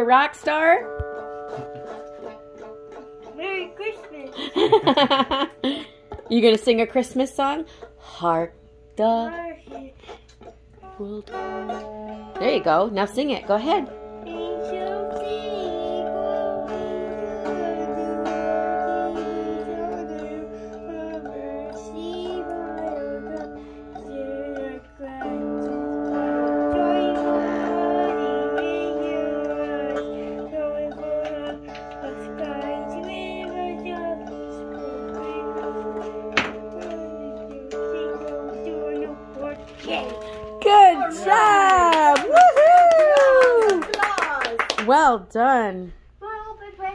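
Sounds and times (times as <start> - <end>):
electric guitar strummed: 0.0 - 8.1, 8.8 - 43.0
child singing: 1.7 - 5.2, 9.0 - 10.2, 10.8 - 12.4, 13.8 - 41.9, 46.2 - 46.9.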